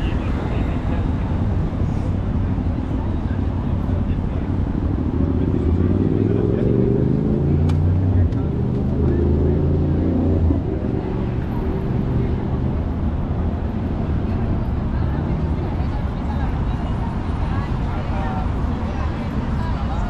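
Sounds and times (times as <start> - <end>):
passers-by talking: 0.0 - 20.0
road traffic going by: 0.0 - 20.0.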